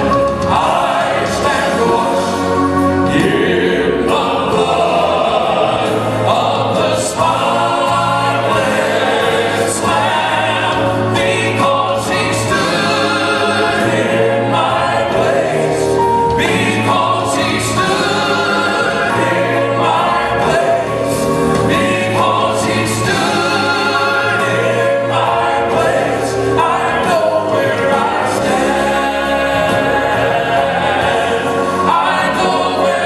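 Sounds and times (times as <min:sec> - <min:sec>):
male quartet singing in harmony: 0:00.0 - 0:33.0.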